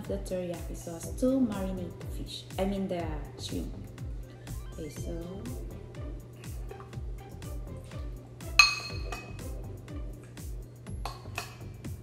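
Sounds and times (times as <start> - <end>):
background music with beat: 0.0 - 12.0
spoon clinking on glass bowl: 8.6 - 9.4, 11.0 - 11.7.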